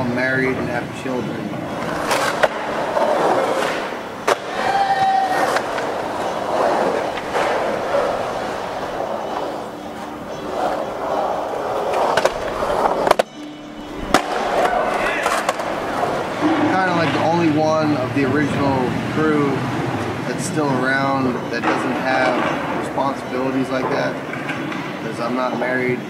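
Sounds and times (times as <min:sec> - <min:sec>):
skateboard wheels rolling on concrete: 0:00.0 - 0:26.0
skateboard clacking on concrete: 0:01.6 - 0:17.2.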